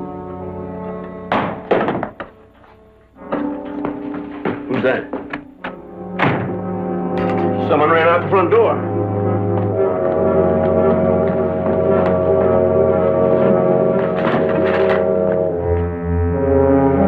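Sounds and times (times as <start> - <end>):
sharp knocks: 1.3 - 2.4, 3.3 - 6.6
orchestral low sustained chords: 2.9 - 17.0.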